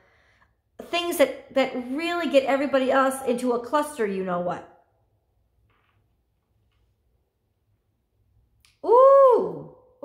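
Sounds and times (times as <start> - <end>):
woman's high-pitched ooh: 8.8 - 9.9.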